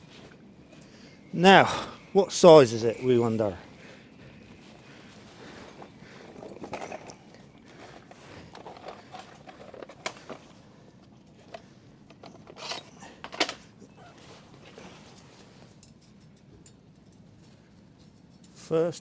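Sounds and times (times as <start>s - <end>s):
hand tools clicking and rustling: 5.3s - 14.0s, 14.6s - 18.6s.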